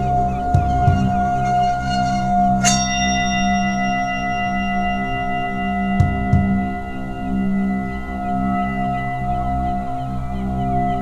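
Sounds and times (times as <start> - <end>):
drone of sustained ambient tones: 0.0 - 11.0
bell-like chime ringing: 0.7 - 6.9.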